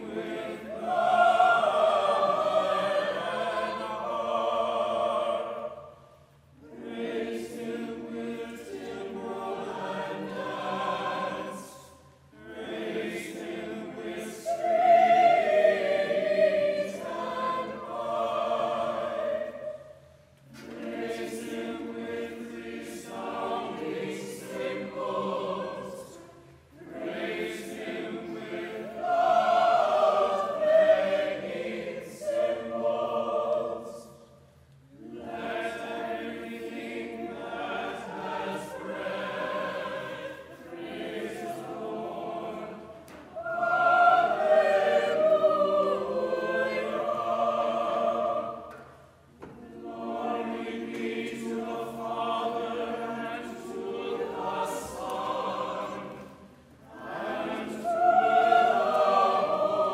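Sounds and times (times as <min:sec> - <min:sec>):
church choir singing: 0:00.0 - 0:59.9.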